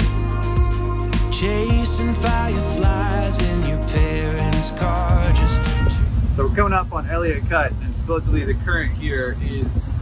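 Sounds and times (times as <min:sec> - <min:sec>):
background music: 0:00.0 - 0:06.2
wind buffeting microphone: 0:05.0 - 0:10.0
man talking: 0:06.4 - 0:10.0.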